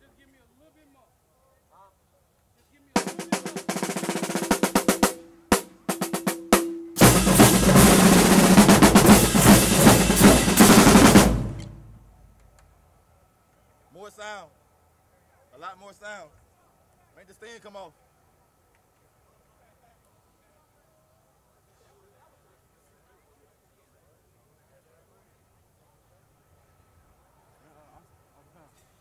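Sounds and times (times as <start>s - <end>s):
drum roll: 3.0s - 12.1s
marching drumline: 3.0s - 12.1s.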